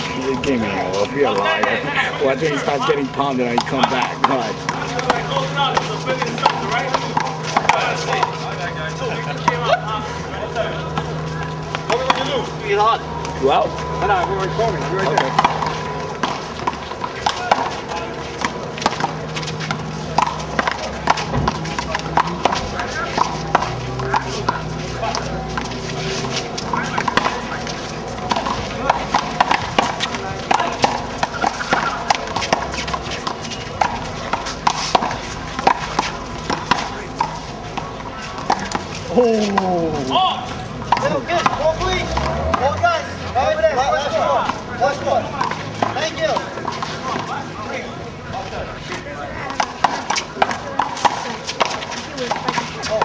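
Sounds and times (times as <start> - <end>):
bystanders talking: 0.0 - 53.0.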